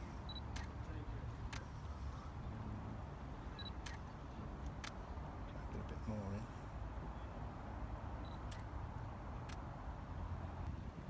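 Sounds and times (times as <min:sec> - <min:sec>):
camera shutter clicks: 0:03.6 - 0:04.1, 0:08.3 - 0:08.7.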